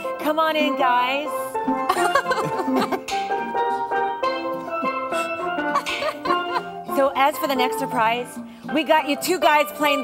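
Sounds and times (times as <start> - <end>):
guitar chords: 0.0 - 8.6
steel pan melody: 0.0 - 10.0.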